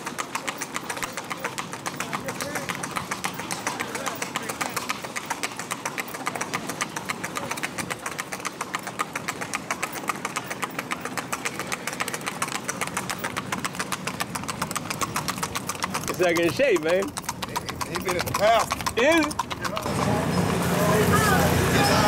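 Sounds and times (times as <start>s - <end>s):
engine hum: 0.0s - 22.0s
horse hoofbeats on road: 0.0s - 22.0s.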